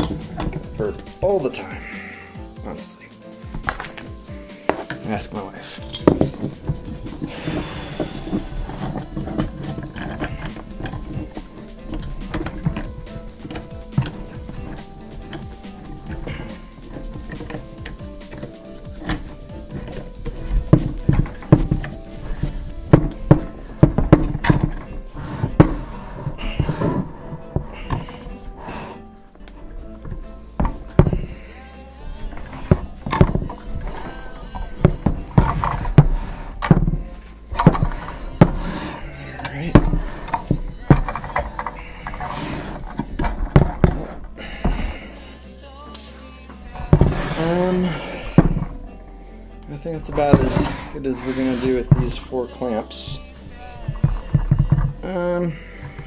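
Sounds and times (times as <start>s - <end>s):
quiet background music: 0.0s - 56.0s
clamps knocking and clicking: 5.8s - 7.3s, 8.0s - 28.4s.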